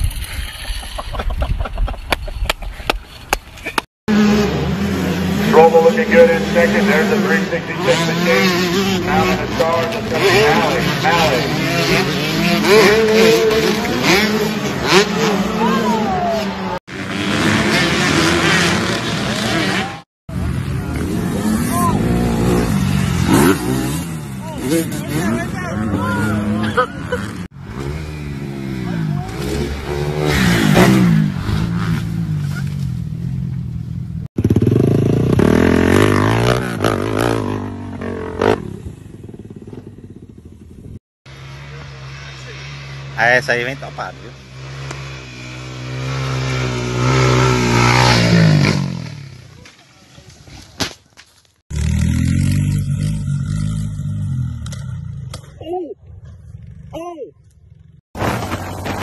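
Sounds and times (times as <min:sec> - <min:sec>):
dirt bike engines revving: 0:00.2 - 0:50.6, 0:51.7 - 0:59.0
people talking and shouting: 0:05.5 - 0:16.8, 0:24.3 - 0:27.4.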